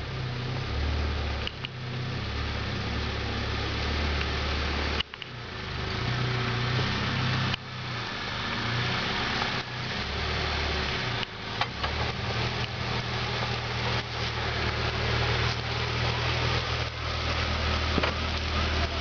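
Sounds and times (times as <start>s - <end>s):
engine running at low revs: 0.0s - 19.0s.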